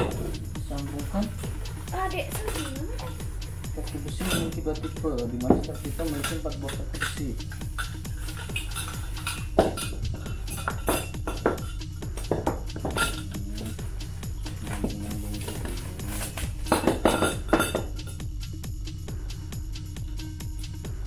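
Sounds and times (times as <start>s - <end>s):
metal tubes clinking and knocking: 0.0s - 19.1s
background music with beat: 0.0s - 21.0s.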